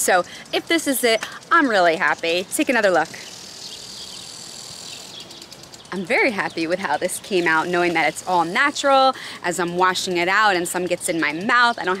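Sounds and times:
high-pitched insect chorus: 0:00.2 - 0:09.8.

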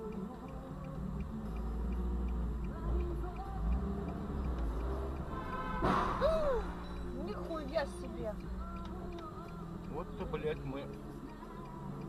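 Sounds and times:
light regular ticking: 0:00.0 - 0:12.0
music in car cabin: 0:00.0 - 0:12.0
car crash: 0:05.8 - 0:06.8.

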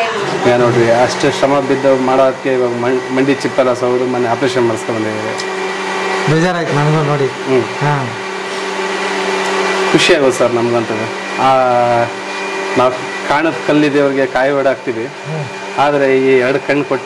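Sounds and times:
electric motor hum: 0:00.0 - 0:17.0
men talking: 0:00.3 - 0:17.0.

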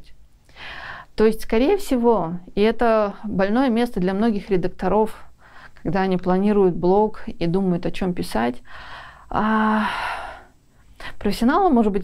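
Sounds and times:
breathy exhale: 0:08.7 - 0:10.6.

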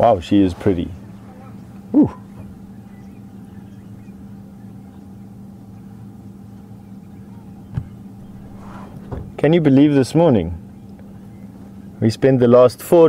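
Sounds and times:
vehicle engine idling: 0:00.0 - 0:13.0.

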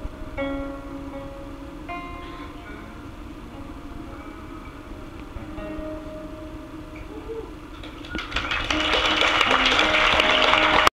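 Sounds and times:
song held notes: 0:00.0 - 0:10.9
audience applause: 0:07.7 - 0:10.9.

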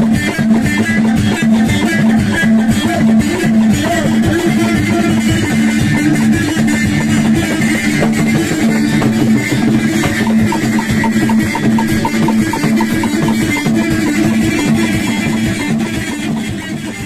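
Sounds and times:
clay hand drums beating: 0:00.0 - 0:17.0
frame drum beating: 0:00.0 - 0:17.0
plucked lute melody: 0:01.9 - 0:17.0.

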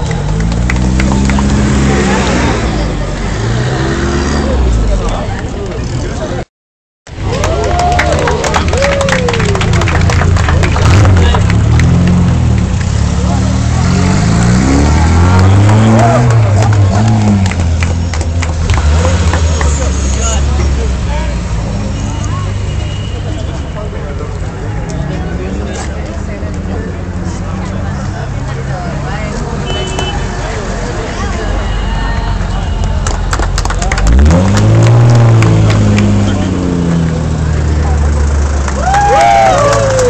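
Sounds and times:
car engines revving: 0:00.0 - 0:06.5, 0:07.2 - 0:40.0
crowd voices: 0:00.0 - 0:06.5, 0:07.1 - 0:40.0.

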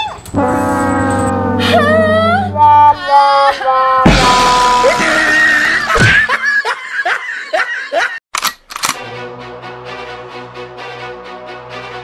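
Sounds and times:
comedic music sting: 0:00.4 - 0:03.0
girl wailing and crying: 0:01.3 - 0:06.0.

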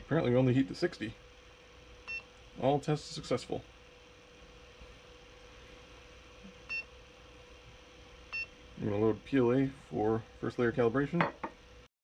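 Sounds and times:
faint steady hum: 0:00.0 - 0:11.9.

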